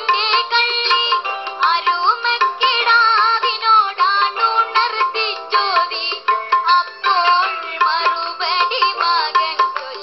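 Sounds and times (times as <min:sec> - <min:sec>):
boy singing: 0:00.0 - 0:10.0
instrumental accompaniment: 0:00.0 - 0:10.0.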